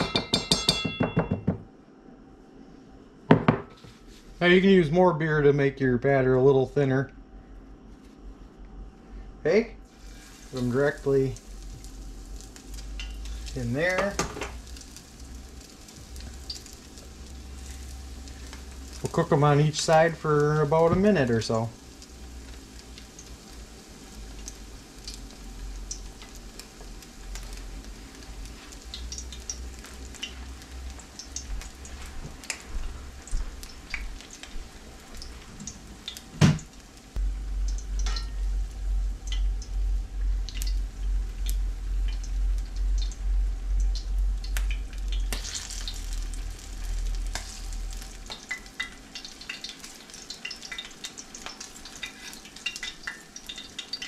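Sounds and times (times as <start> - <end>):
fish frying in hot oil: 9.8 - 54.0
low pulsing rumble: 37.2 - 48.3.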